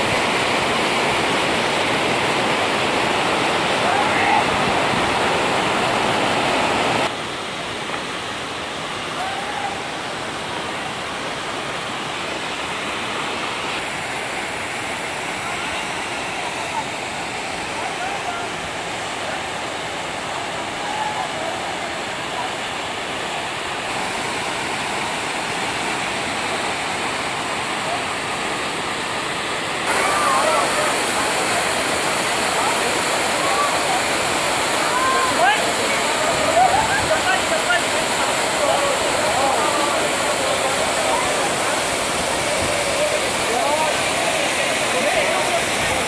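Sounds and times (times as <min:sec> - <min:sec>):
rushing stream and waterfall: 0:00.0 - 0:46.0
people calling out: 0:29.9 - 0:31.2, 0:34.7 - 0:43.9.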